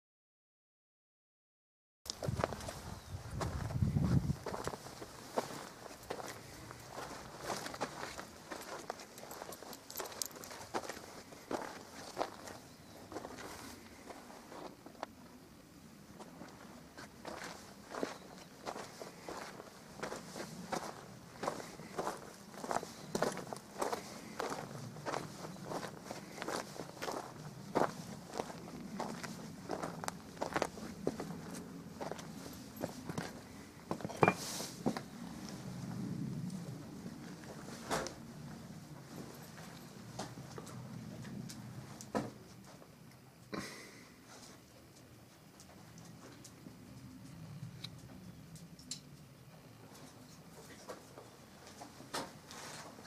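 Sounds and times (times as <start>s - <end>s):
footsteps on stony dirt: 2.1s - 15.1s, 16.2s - 35.1s.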